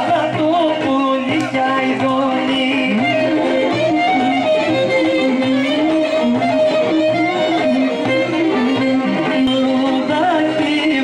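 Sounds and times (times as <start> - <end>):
folk band playing: 0.0 - 11.0
person singing: 0.0 - 11.0.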